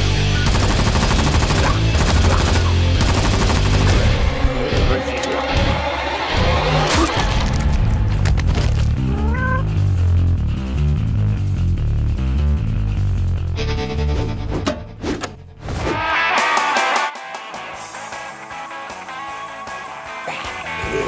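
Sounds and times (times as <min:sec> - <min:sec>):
heavy action film music: 0:00.0 - 0:21.0
machine-gun fire: 0:00.4 - 0:04.2
cat meow: 0:09.0 - 0:09.7.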